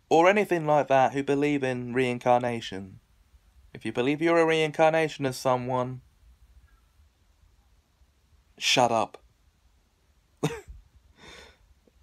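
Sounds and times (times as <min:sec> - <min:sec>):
man speaking: 0:00.1 - 0:03.0, 0:03.8 - 0:06.0, 0:08.6 - 0:09.2
man coughing vocal burst: 0:10.4 - 0:10.8.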